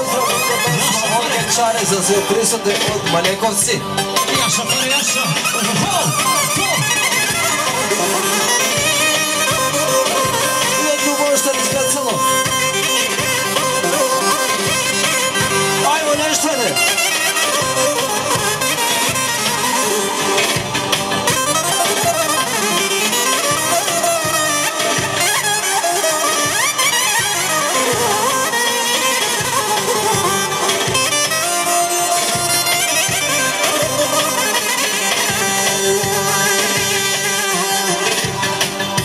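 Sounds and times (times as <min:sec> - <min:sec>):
reedy wind instrument melody: 0:00.0 - 0:39.0
steady drum beat: 0:00.0 - 0:39.0.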